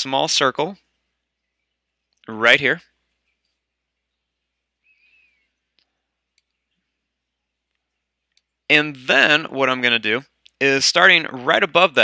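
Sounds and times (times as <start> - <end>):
faint wavering chirp: 4.0 - 5.6
faint ticks: 4.8 - 6.9, 7.6 - 8.7.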